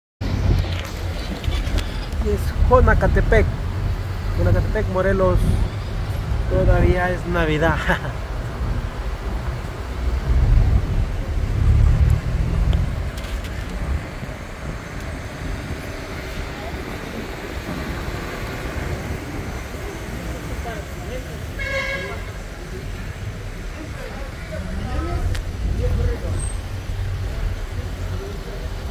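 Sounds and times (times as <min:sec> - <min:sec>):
vehicle driving rumble: 0:00.2 - 0:28.9
car horn toot: 0:21.5 - 0:22.4.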